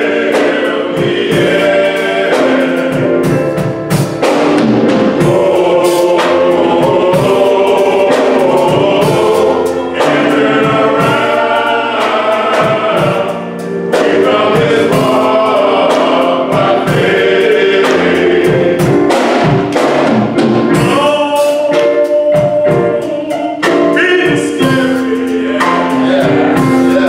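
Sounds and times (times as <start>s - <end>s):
drum kit beat: 0.0s - 27.0s
men's gospel choir singing: 0.0s - 27.0s.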